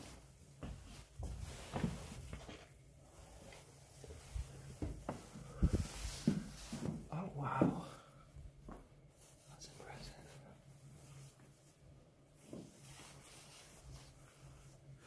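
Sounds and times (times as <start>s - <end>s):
person whispering: 7.0s - 8.3s, 9.4s - 10.8s.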